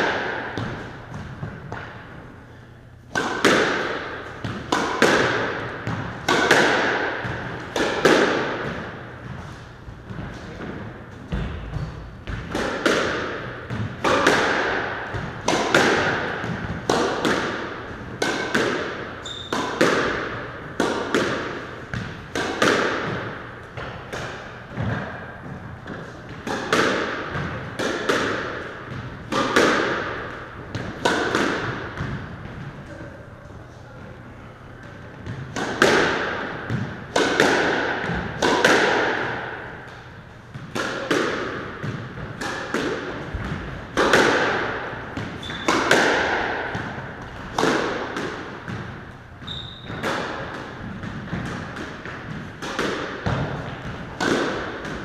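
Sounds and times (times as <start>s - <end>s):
squash ball strikes echoing: 0.0s - 55.0s.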